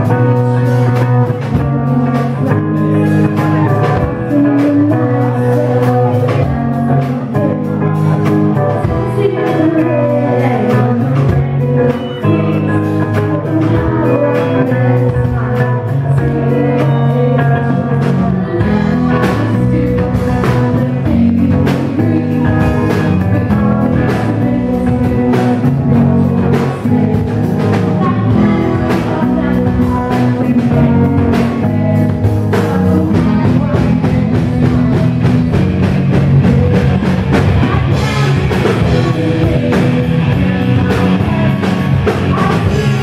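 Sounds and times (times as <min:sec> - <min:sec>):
drum kit: 0:00.0 - 0:43.0
electric guitars: 0:00.0 - 0:43.0
female lead vocals: 0:00.0 - 0:43.0.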